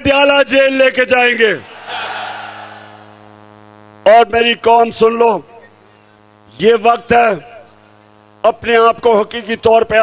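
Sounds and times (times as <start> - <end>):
steady low hum: 0.9 - 10.0
crowd cheering: 1.6 - 3.4.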